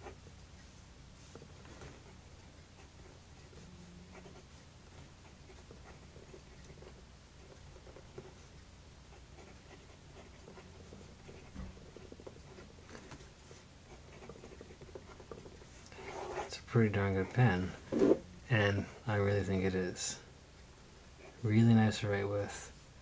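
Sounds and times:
pen nib scratching on paper: 0:01.2 - 0:16.5.

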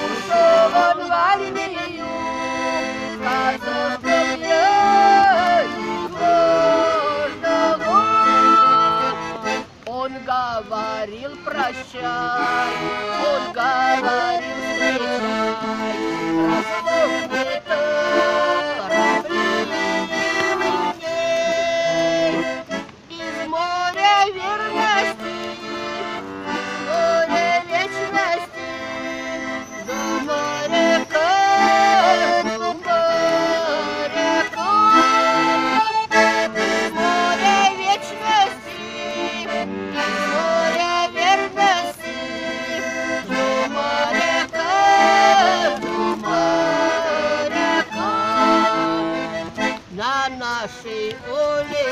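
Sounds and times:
button accordion playing folk melody: 0:00.0 - 0:51.9.

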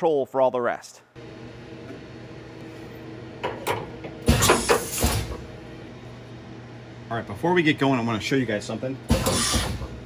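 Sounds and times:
shop machinery hum: 0:01.0 - 0:10.0.

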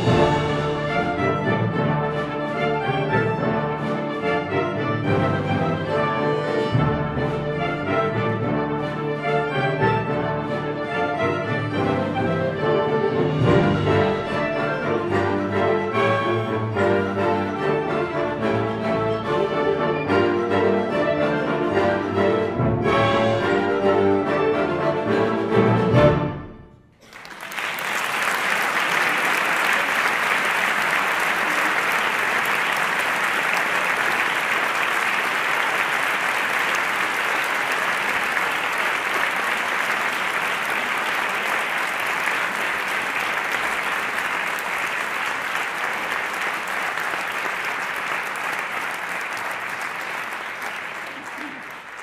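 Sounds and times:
audience applauding: 0:27.0 - 0:52.0.

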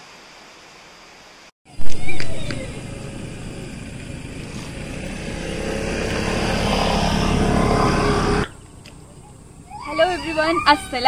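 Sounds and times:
vehicle engine approaching: 0:01.7 - 0:10.9.

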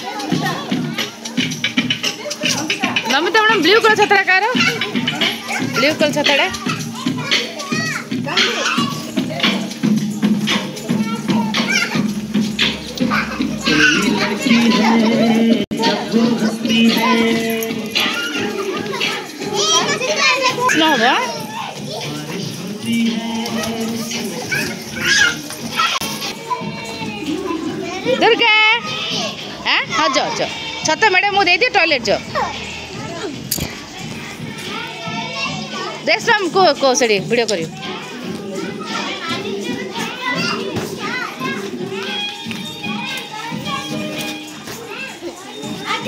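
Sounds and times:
children talking and calling out: 0:00.0 - 0:46.0
music playing: 0:00.0 - 0:46.0.

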